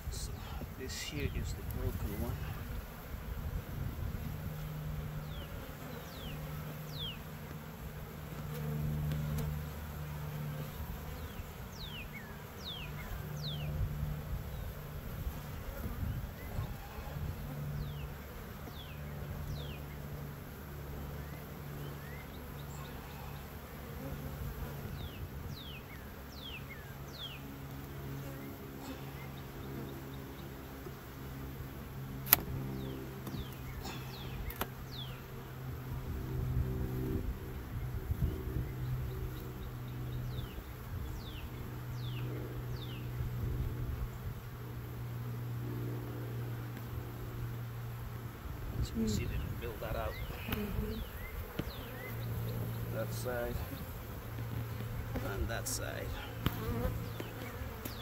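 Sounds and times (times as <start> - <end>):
bees buzzing: 0.0 - 58.0
sharp click: 32.2 - 32.5.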